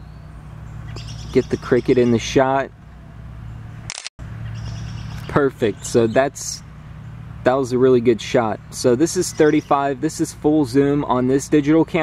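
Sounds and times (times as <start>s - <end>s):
low background hum: 0.0s - 12.0s
camera shutter click: 3.9s - 4.1s.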